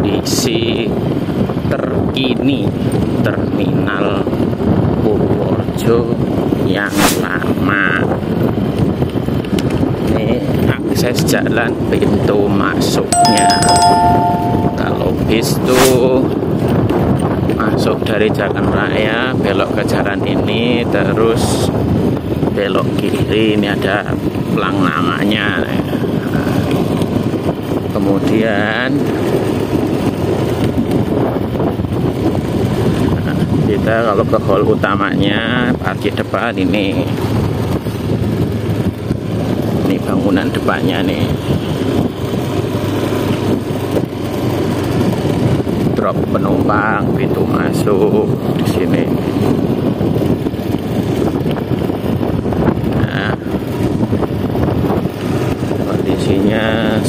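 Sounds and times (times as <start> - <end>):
wind buffeting microphone: 48.2 - 56.2.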